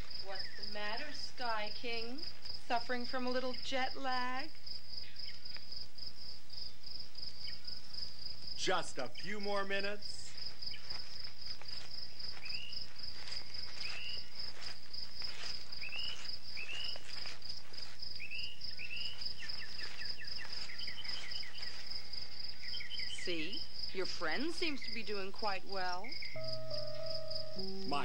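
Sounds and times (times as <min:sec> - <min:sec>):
crickets shrilling: 0:04.6 - 0:25.1
bird chirping: 0:18.2 - 0:25.3, 0:26.0 - 0:28.0.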